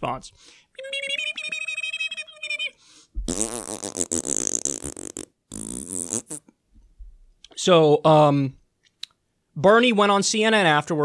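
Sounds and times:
man's mouth held tone: 0.8s - 6.5s
man blowing raspberry: 3.2s - 6.5s.

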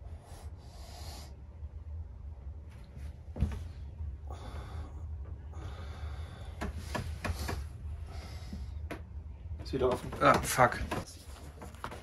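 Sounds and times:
breathy exhalations: 4.2s - 8.9s.

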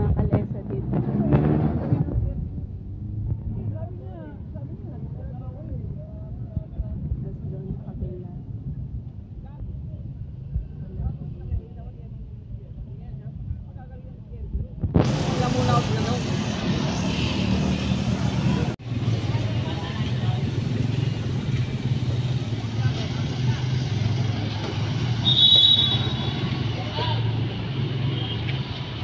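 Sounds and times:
street traffic hum: 0.0s - 29.0s.

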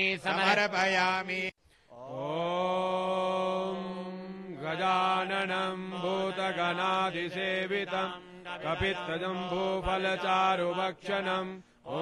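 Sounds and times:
person chanting long note: 2.0s - 4.7s.

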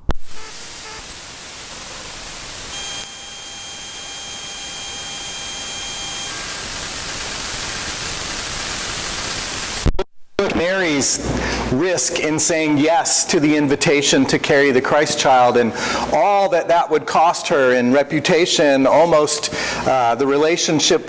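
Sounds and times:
loud static hiss: 0.0s - 21.0s.

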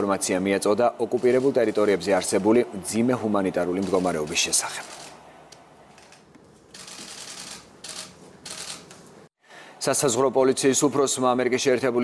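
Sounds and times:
camera shutters clicking: 4.8s - 5.2s, 5.9s - 9.0s.

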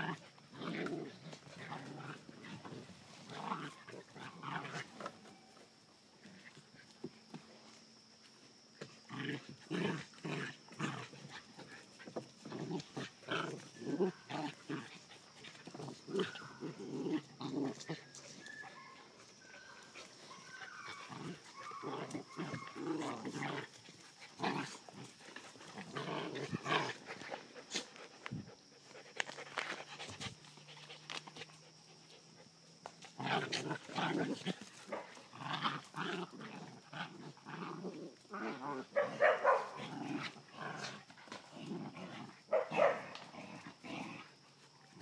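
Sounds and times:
puppies growling and yapping: 0.0s - 5.6s, 9.0s - 45.0s.

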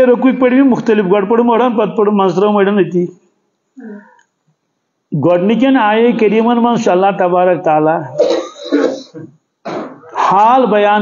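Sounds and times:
man clearing throat and coughing: 8.1s - 10.3s.

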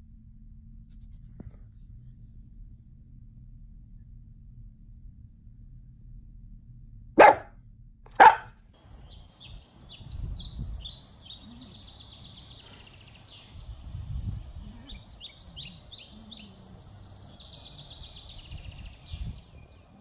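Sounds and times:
faint outdoor background noise: 0.0s - 20.0s
birds chirping: 7.2s - 7.4s, 8.2s - 20.0s
dog barking: 7.2s - 7.5s, 8.1s - 8.5s.

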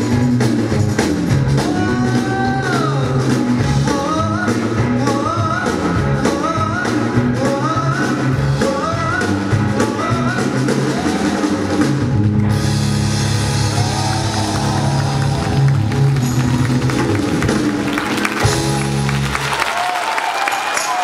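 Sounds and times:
live band playing: 0.0s - 21.0s
man singing: 1.5s - 12.0s.

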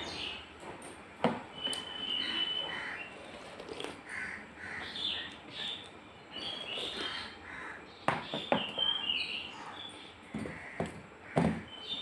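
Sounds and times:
crows cawing: 2.6s - 3.1s, 4.0s - 5.3s, 6.9s - 8.0s, 9.5s - 11.7s.

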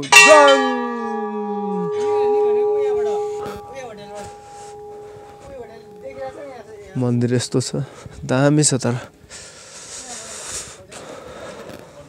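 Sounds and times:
large bell ringing: 0.0s - 7.7s.

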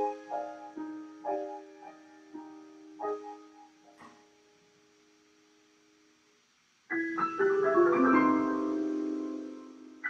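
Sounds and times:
piano chord: 0.0s - 4.1s, 6.9s - 10.0s.

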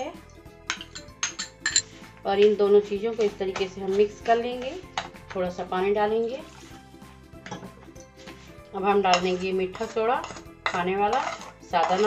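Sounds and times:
spoon clinking bowls: 0.7s - 2.5s, 9.0s - 12.0s.

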